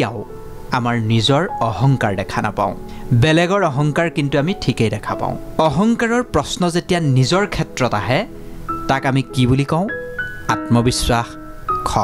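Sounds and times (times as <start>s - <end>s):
background music with held tones: 0.0s - 12.0s
person speaking: 0.0s - 12.0s.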